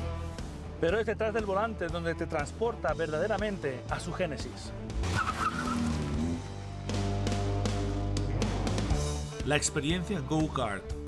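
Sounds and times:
background music: 0.0s - 11.0s
car engine pulling away: 4.9s - 8.9s
tyre squeal: 5.1s - 6.4s.

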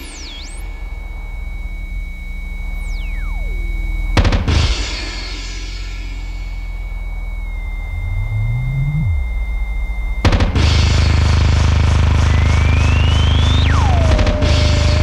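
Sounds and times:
low tone sliding upward: 0.0s - 4.2s, 5.8s - 11.3s
tone sweeping down: 0.0s - 4.7s, 5.6s - 15.0s
high electronic tone: 0.0s - 15.0s
low drone: 0.0s - 15.0s.

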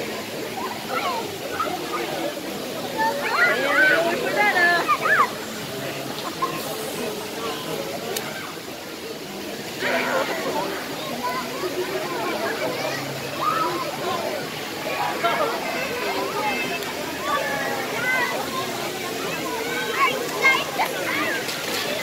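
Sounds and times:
people talking and calling out: 0.0s - 22.0s
pool water sloshing: 0.0s - 22.0s.

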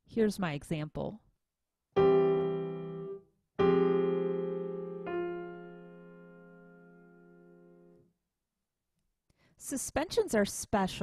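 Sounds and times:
held piano note: 2.0s - 8.0s.

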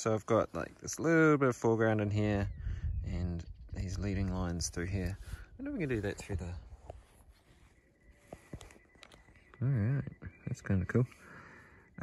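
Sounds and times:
faint steady high tone: 3.9s - 12.0s.

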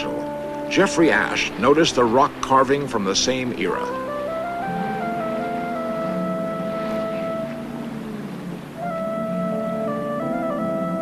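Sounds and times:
synthesizer held tones: 3.7s - 11.0s.

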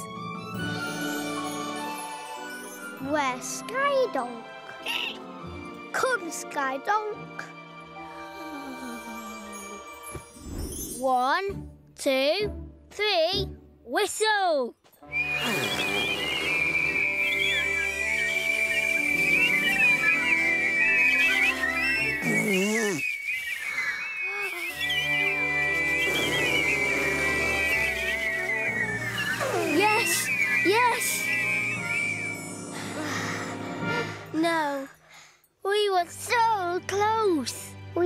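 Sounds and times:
gentle background music: 0.0s - 22.3s, 24.7s - 34.9s, 35.6s - 38.0s
cartoon characters whistling: 15.0s - 33.6s.

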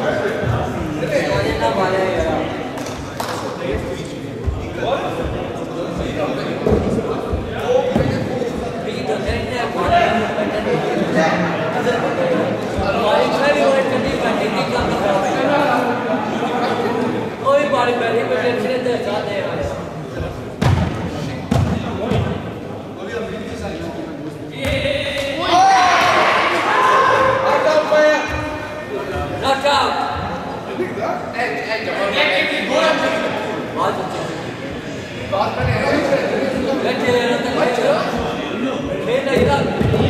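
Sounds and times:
sharp thumps echoing in hall: 0.0s - 10.8s, 19.5s - 23.8s, 24.5s - 26.3s, 27.3s - 30.7s, 34.6s - 40.0s
men talking indistinctly: 0.0s - 40.0s.

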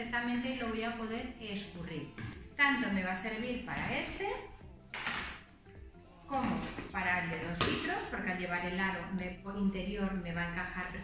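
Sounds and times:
woman speaking: 0.0s - 4.6s, 6.3s - 11.0s.

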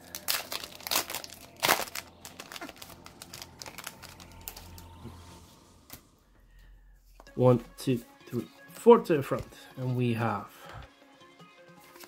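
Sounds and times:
foil wrapper crinkling: 0.0s - 4.9s.

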